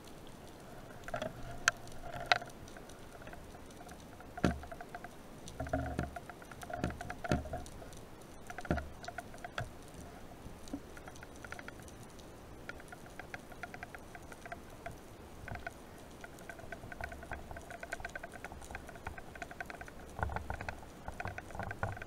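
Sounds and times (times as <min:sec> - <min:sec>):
underwater clicking crackle: 0:00.0 - 0:22.0.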